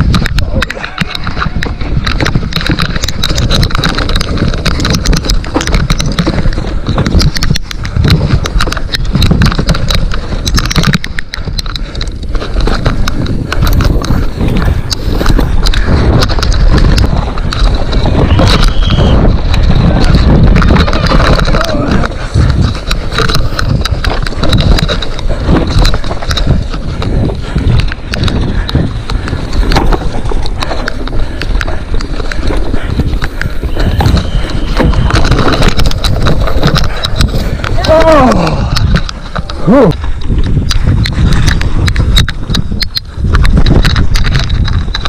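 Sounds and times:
bike frame knocks and clicks: 0:00.0 - 0:45.0
tyres rumbling on trail: 0:00.0 - 0:45.0
wind on microphone: 0:00.0 - 0:45.0.

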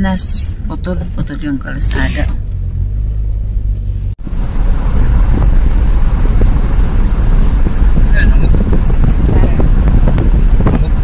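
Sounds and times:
car engine hum: 0:00.0 - 0:11.0
tyres rumbling on gravel: 0:04.2 - 0:11.0.

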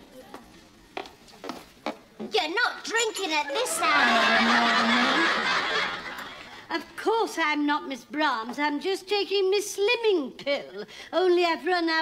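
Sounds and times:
glass bottle clinking glass: 0:02.9 - 0:04.0.

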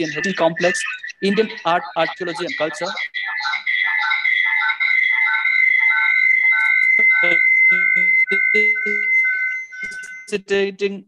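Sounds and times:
high-pitched whistling tone: 0:05.5 - 0:10.4
shorter lower tones: 0:06.6 - 0:10.3.

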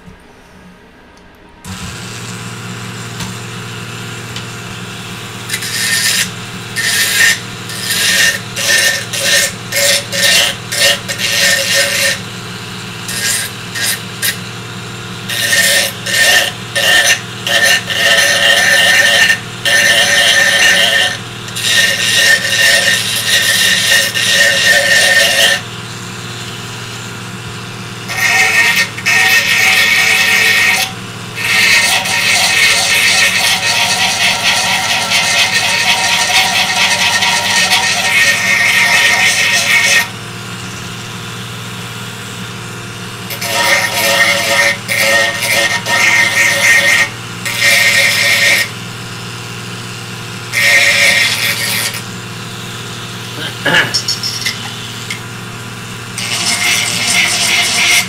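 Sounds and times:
rotary tool humming: 0:01.6 - 0:58.0
bit grinding into plastic: 0:56.1 - 0:58.0.

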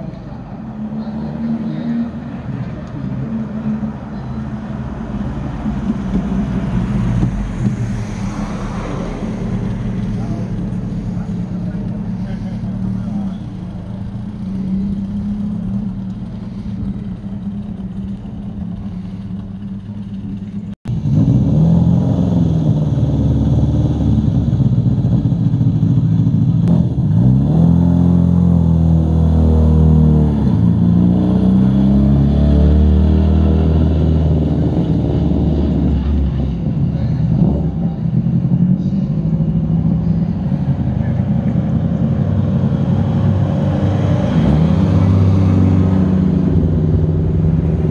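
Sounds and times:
car engines idling: 0:00.0 - 0:21.6, 0:22.4 - 0:31.8, 0:33.1 - 0:47.9
car engines revving: 0:00.0 - 0:47.9.

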